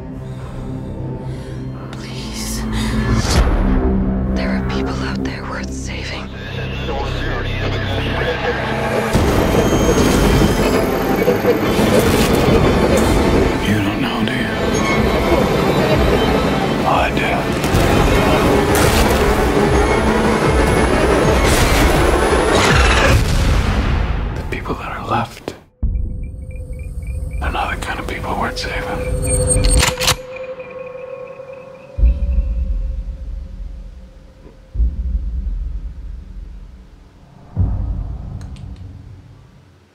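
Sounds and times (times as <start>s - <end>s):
loud train-like rumbling: 6.4s - 23.0s
deep cinematic bass booms: 32.0s - 39.6s.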